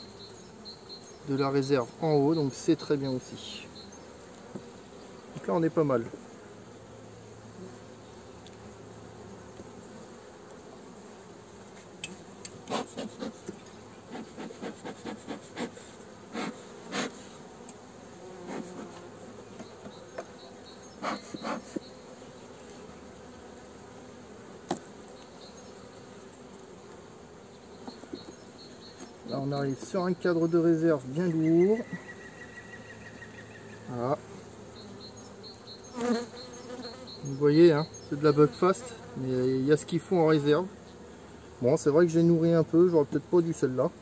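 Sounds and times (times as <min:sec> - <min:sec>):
honeybees humming: 0:00.0 - 0:44.0
clicks of hive tool and frames: 0:11.8 - 0:13.8, 0:17.6 - 0:17.8.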